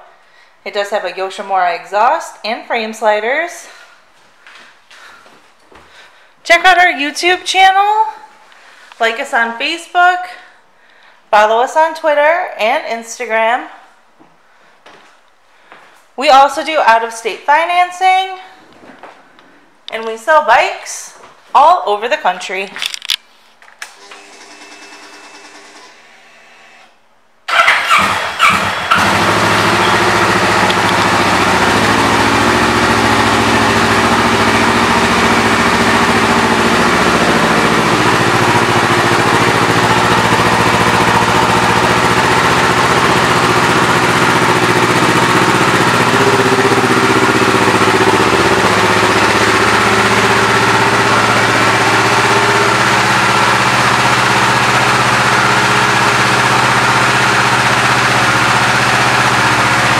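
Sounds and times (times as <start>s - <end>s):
motorcycle engine starting and idling: 23.8s - 26.2s, 27.5s - 59.9s.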